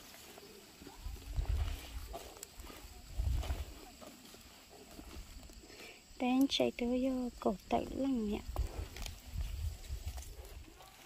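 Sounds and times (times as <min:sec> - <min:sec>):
faint field rustle: 0:00.0 - 0:11.0
wind rumbling on microphone: 0:01.0 - 0:03.9, 0:07.3 - 0:10.8.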